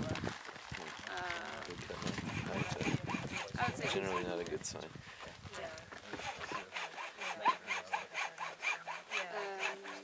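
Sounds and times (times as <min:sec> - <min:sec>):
people talking: 0:01.0 - 0:04.9, 0:09.2 - 0:10.0.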